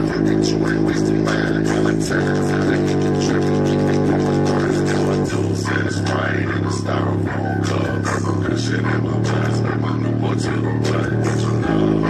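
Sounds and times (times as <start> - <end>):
bass-boosted hip-hop through woofer: 0.0 - 12.0.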